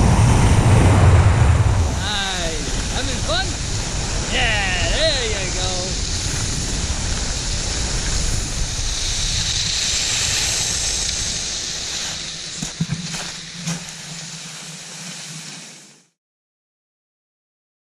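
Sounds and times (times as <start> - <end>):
wind buffeting microphone: 0.0 - 14.6
skis sliding on snow: 1.8 - 16.2.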